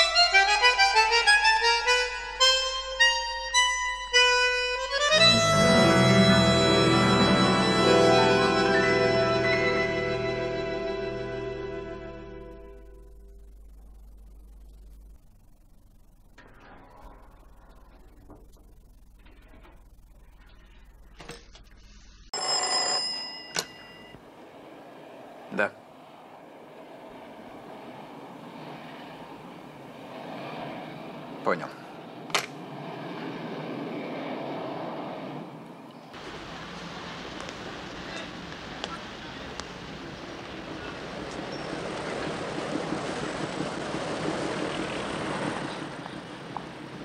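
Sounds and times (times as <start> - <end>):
telephone bell ringing: 22.4 - 24.2
churning water rushing: 36.2 - 47.0.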